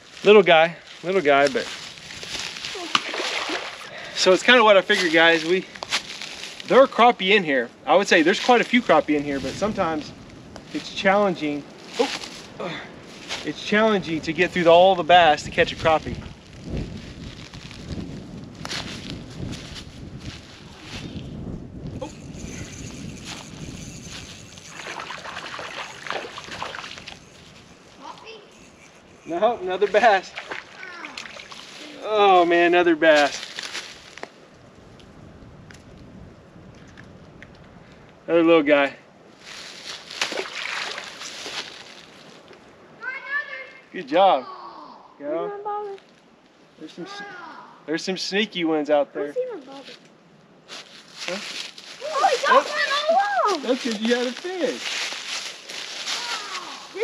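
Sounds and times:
wind rumbling on microphone: 1.5s - 4.2s, 5.0s - 38.3s
fish splashing into water: 2.7s - 4.0s, 24.7s - 27.1s, 30.3s - 31.8s, 40.2s - 41.4s.

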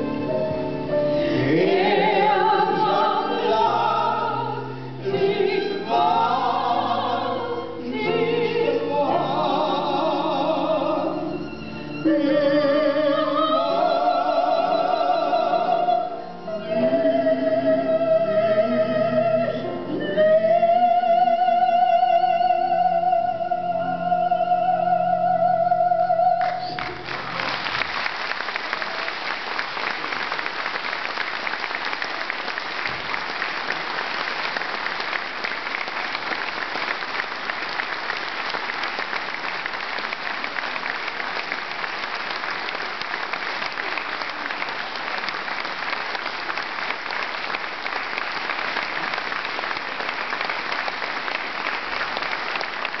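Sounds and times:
audience applauding: 26.4s - 53.0s.

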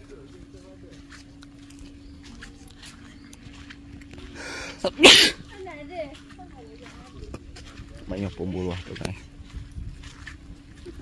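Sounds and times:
person sneezing: 4.9s - 5.4s.

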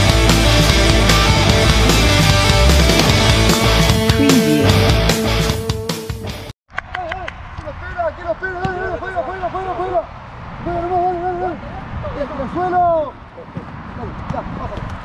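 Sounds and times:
rock music: 0.0s - 6.5s
man shouting: 4.2s - 5.0s.

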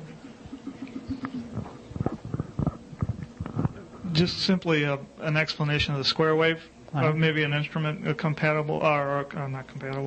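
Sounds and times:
microphone handling bumps and rubs: 1.4s - 4.0s.

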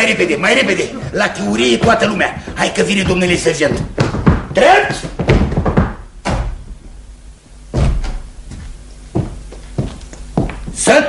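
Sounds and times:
heavy thuds: 0.6s - 7.0s, 7.6s - 10.8s.

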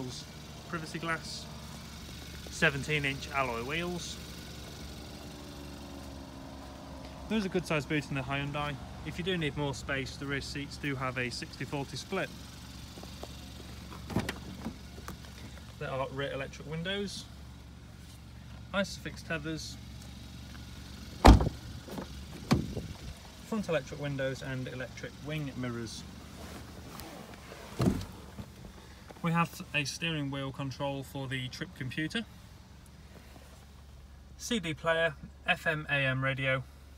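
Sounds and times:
vehicle engine idling: 0.0s - 36.9s
car door shutting: 13.9s - 15.1s, 21.2s - 22.8s, 26.9s - 28.6s.

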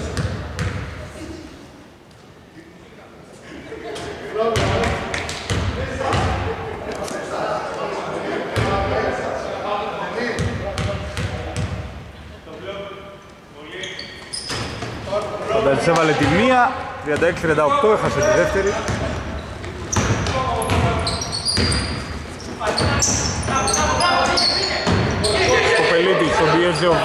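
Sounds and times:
voices: 2.5s - 27.0s
basketball bouncing on hardwood: 21.6s - 22.0s.

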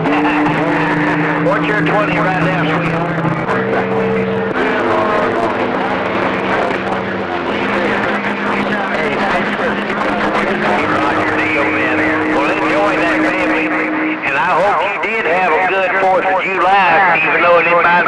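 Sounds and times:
garbled radio voices: 0.0s - 18.0s
radio static: 0.0s - 18.0s
low whistle tones: 10.7s - 17.4s.

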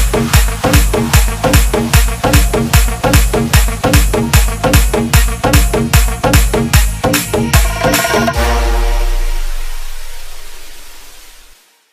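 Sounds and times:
gritty buzzing noise wash: 7.4s - 11.6s.

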